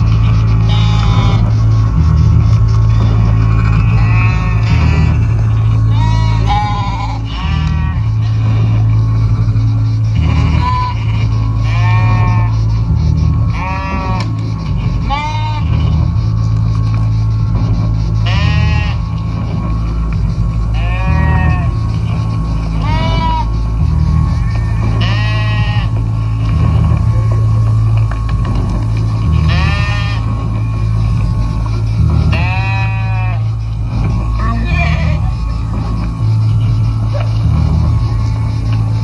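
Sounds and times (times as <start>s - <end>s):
sheep bleats: 0.0s - 9.4s, 10.1s - 16.1s, 18.2s - 19.6s, 20.7s - 27.1s, 28.6s - 31.3s, 32.0s - 38.0s
low droning bass line: 0.0s - 39.0s.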